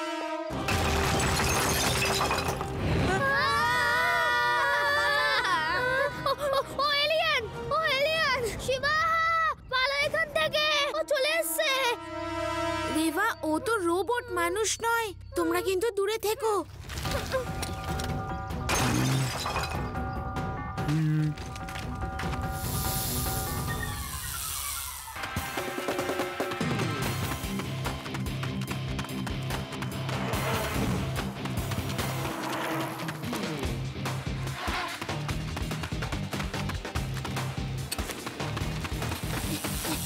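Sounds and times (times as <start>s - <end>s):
background music: 0.0s - 40.0s
wall smashing and shattering: 0.6s - 2.9s, 18.7s - 19.8s
rubble and debris rattling: 0.6s - 3.1s, 16.7s - 20.4s, 21.3s - 22.6s
crumbling crackles: 16.7s - 18.2s, 20.9s - 22.8s.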